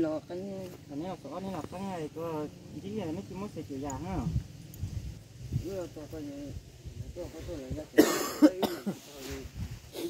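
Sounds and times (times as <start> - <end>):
people talking: 0.0 - 4.4, 5.6 - 10.0
loud cough: 7.9 - 9.0.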